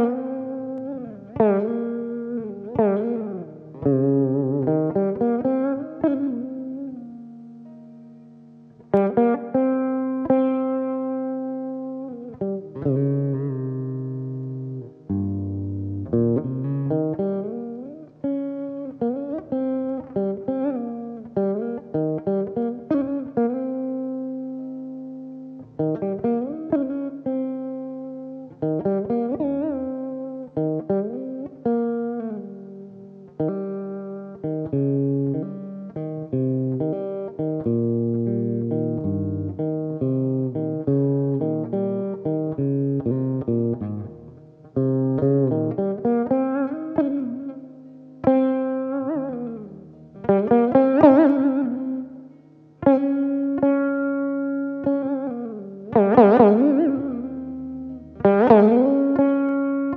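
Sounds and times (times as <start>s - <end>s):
plucked veena melody: 0.0s - 59.9s.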